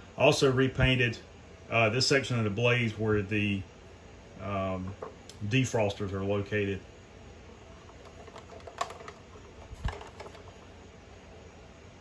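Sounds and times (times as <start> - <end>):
hard plastic toy clicking and tapping: 7.9 - 10.6.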